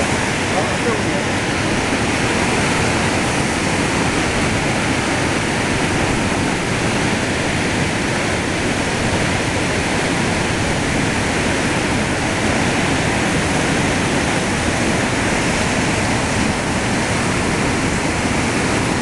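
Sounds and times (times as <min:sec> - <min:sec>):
water rushing over weir: 0:00.0 - 0:19.0.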